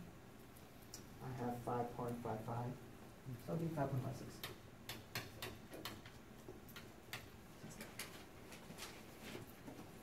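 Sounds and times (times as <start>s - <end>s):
marker ticking on whiteboard: 4.4s - 7.3s.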